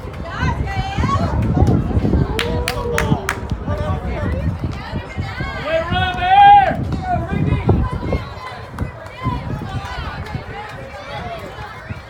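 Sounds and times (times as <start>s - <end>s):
people talking indistinctly: 0.0s - 12.0s
wind rumbling on microphone: 0.0s - 12.0s.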